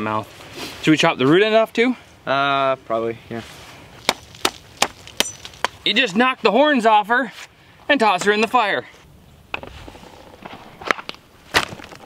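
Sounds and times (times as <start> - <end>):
machete chopping strikes: 4.0 - 5.8.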